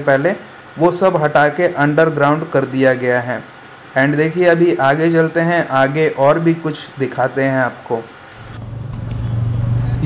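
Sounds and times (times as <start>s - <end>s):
motor vehicle rumble: 8.4s - 10.0s.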